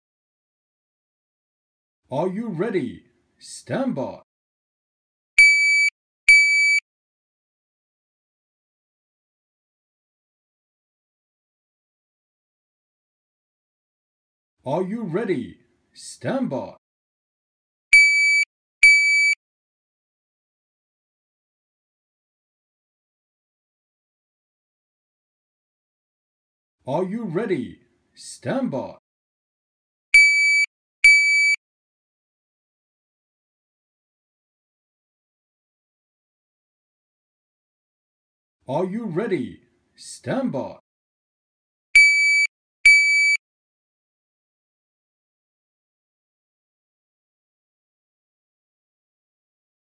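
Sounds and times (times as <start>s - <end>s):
shot timer beeps: 5.4s - 6.8s, 18.0s - 19.4s, 30.2s - 31.6s, 42.0s - 43.4s.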